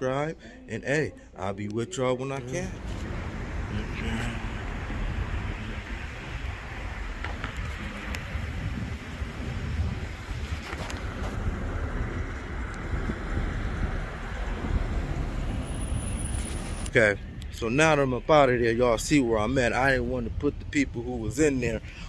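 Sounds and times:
road traffic hiss and rumble: 2.4 - 22.0.

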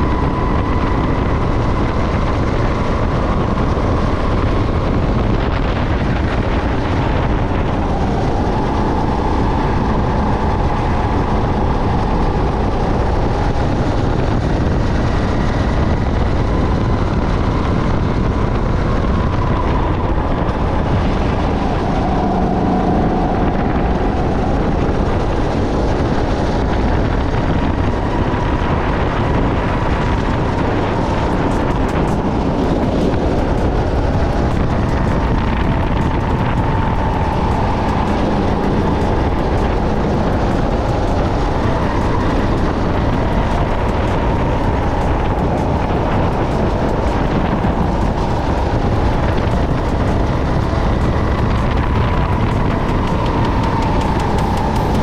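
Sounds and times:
go-kart engine droning: 0.0 - 55.0
track rumble: 0.0 - 55.0.

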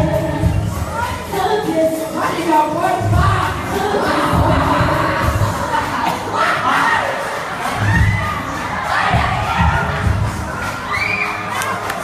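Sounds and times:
dance music with bass beat: 0.0 - 11.3
crowd cheering and shrieking: 3.2 - 12.0.

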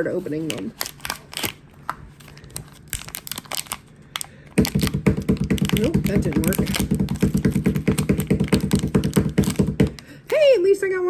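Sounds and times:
foil pouch crinkling: 0.2 - 10.2.

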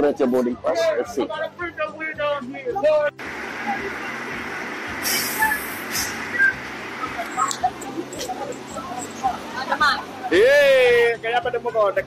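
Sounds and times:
idling buses rumbling: 3.2 - 12.0
air brakes hissing: 4.9 - 6.6.

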